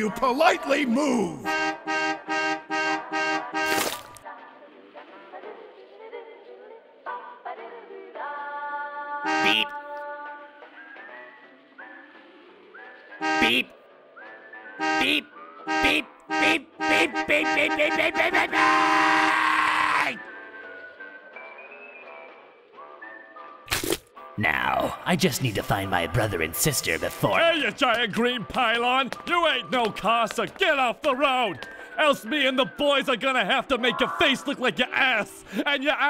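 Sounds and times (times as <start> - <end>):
bus horn short blasts: 1.4 - 4.1, 9.2 - 9.8, 13.2 - 13.7, 14.8 - 19.2
quiet music: 19.9 - 36.0.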